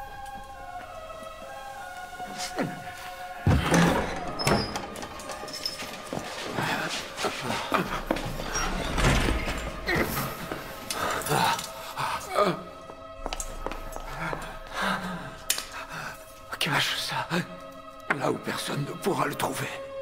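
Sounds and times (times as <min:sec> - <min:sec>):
dramatic music: 0:00.0 - 0:20.0
men crying out: 0:02.2 - 0:12.9.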